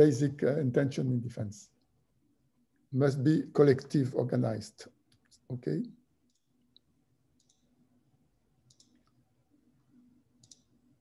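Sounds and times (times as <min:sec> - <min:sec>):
faint computer clicks: 0:06.2 - 0:07.7, 0:08.6 - 0:09.2, 0:10.4 - 0:10.8.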